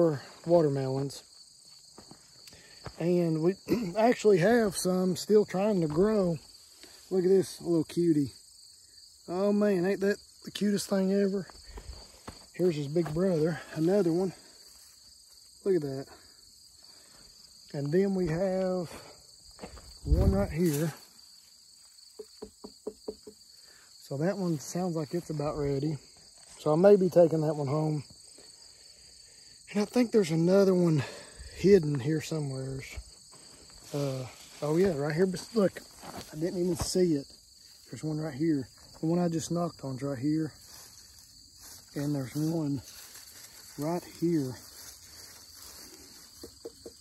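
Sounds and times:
insect chirring: 0.0 - 47.0
hand knocking on watermelon: 22.2 - 23.4.

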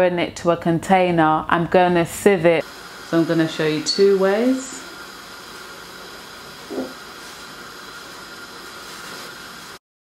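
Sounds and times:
gas burner hissing: 2.3 - 9.8.

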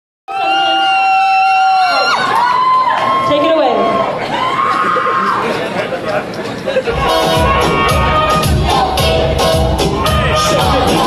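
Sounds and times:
crowd noise: 0.3 - 11.0.

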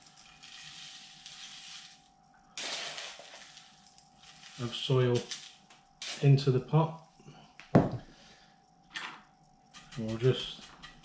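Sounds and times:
grains poured into pot: 0.0 - 6.4
gritty soil rustling in scoop: 0.0 - 6.5.

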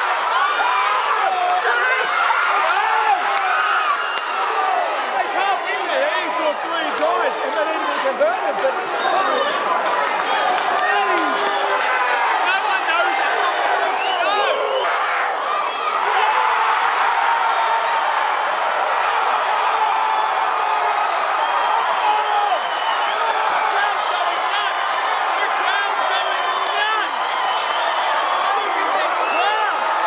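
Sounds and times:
stadium crowd cheering: 0.0 - 30.0.

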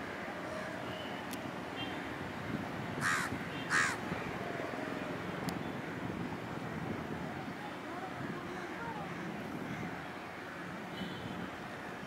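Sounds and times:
steady background noise: 0.0 - 12.0
crow cawing: 3.0 - 4.0.

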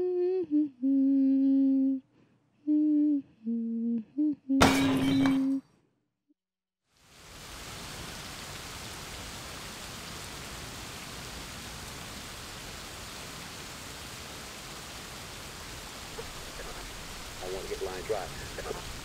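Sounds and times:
heavy rain: 6.9 - 19.0
television voice: 16.2 - 19.0.

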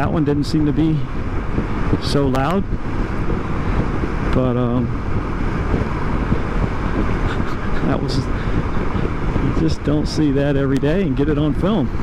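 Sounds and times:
motorcycle engine running: 0.0 - 12.0
road noise: 0.0 - 12.0
wind rush: 0.0 - 12.0.

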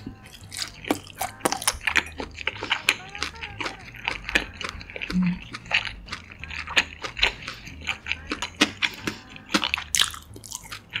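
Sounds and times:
crunching while chewing crisp food: 0.0 - 11.0.

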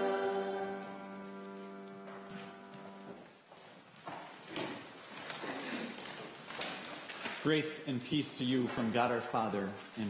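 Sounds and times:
organ chord: 0.0 - 3.2.

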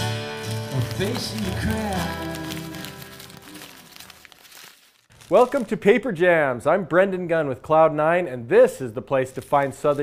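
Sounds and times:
acoustic music: 0.0 - 4.4
paper crumpling and tearing: 0.1 - 5.9, 9.2 - 10.0.

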